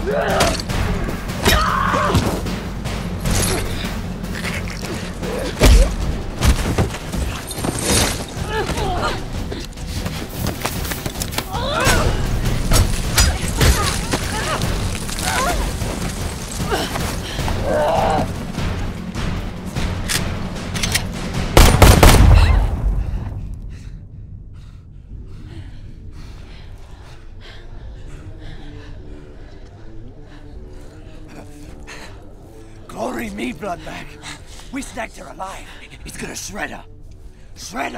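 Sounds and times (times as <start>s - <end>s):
low music drone: 0.0s - 37.9s
low rumble: 18.4s - 31.2s
heavy panting breaths: 23.0s - 32.9s.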